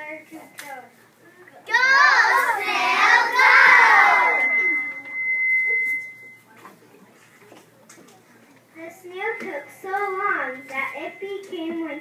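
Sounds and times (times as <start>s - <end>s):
loudspeaker feedback whistle: 3.4s - 6.4s.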